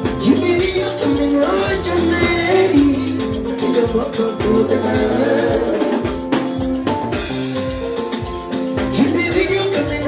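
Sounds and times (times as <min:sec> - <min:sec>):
man singing: 0:00.0 - 0:06.4, 0:08.8 - 0:10.0
bass line: 0:00.0 - 0:10.0
fast high percussion: 0:00.0 - 0:10.0.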